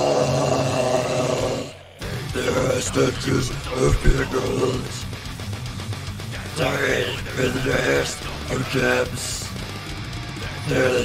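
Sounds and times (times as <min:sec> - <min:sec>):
rasping metal scream: 0:00.0 - 0:05.1.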